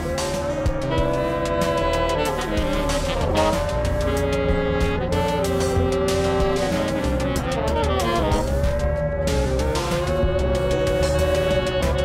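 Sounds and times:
low rumble: 0.0s - 12.0s
saxophone: 0.0s - 12.0s
synthesizer tones: 0.0s - 12.0s.

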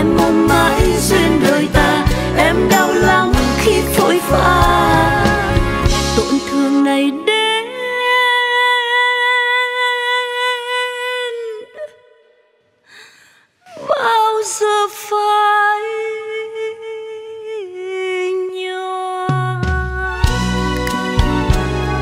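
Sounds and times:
singer breathing: 12.8s - 13.6s.

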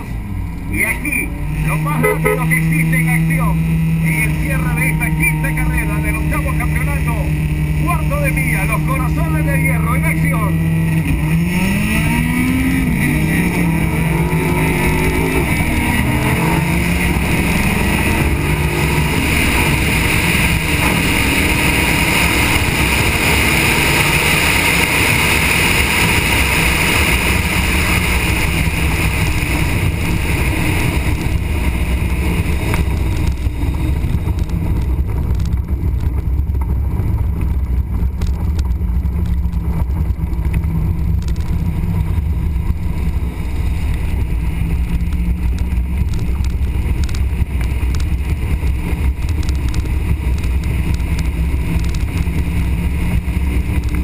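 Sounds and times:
sports car engine revving: 0.0s - 54.0s.

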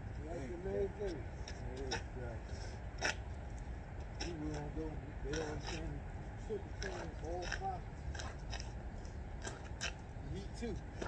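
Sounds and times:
low outdoor rumble: 0.0s - 11.0s
people talking indistinctly: 0.2s - 3.2s, 4.1s - 8.0s.

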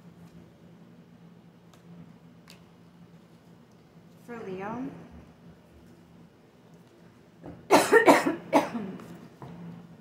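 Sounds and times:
woman coughing: 7.7s - 9.0s.

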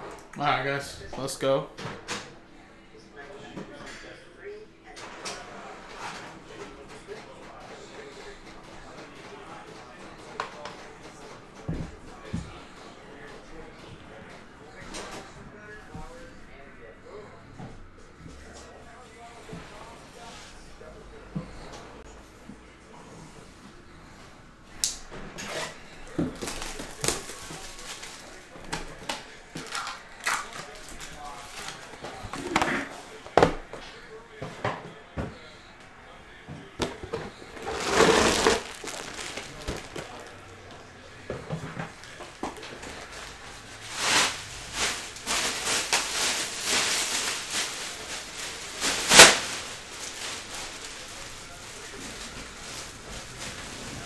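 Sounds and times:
foil pack crinkling and tearing: 26.3s - 28.8s, 29.6s - 31.8s, 37.6s - 40.4s, 42.8s - 53.8s.

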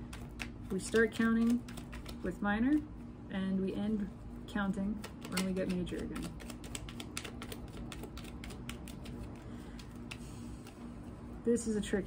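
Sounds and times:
cards clicking and snapping: 0.0s - 2.3s, 5.0s - 10.8s.

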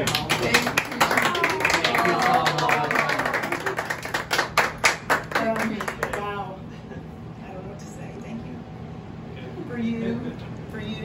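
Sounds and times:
people clapping: 0.0s - 6.4s.

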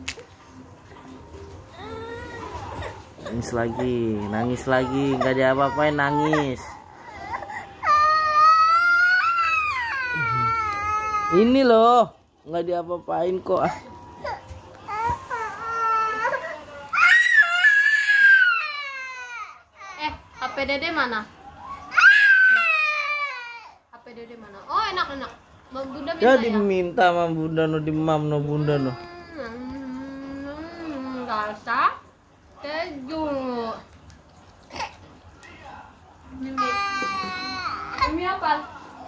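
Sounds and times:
toddler crying: 1.7s - 11.6s, 13.7s - 20.6s, 21.9s - 23.8s, 28.6s - 31.5s, 36.4s - 38.3s.

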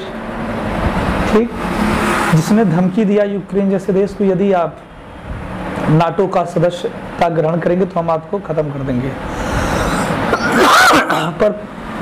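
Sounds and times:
steady rushing noise: 0.0s - 4.4s
person speaking: 5.8s - 11.7s.

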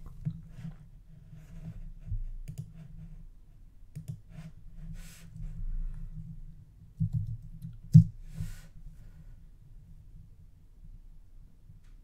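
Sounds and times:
computer mouse clicking: 2.5s - 2.8s, 3.9s - 4.2s.

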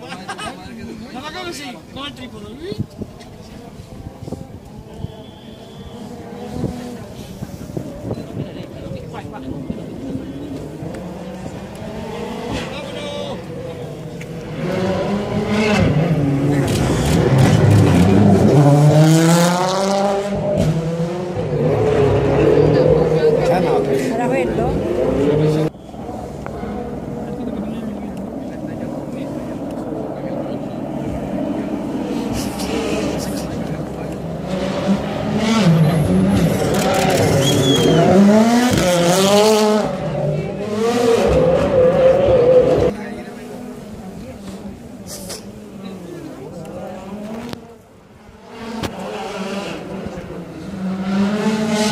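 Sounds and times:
rally car engine revving: 3.3s - 51.9s.

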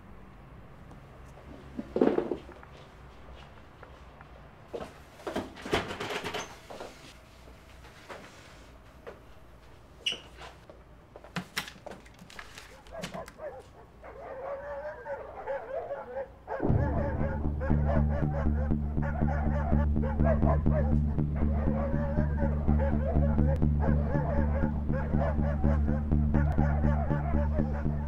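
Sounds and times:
high whining tones: 16.6s - 28.0s
loud low drone: 16.6s - 28.0s.

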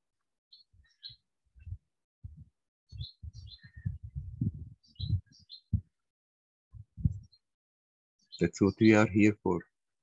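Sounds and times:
small birds chirping: 0.5s - 6.1s, 6.7s - 7.6s, 8.2s - 9.8s
low thuds on microphone: 2.2s - 5.9s, 6.8s - 7.3s.

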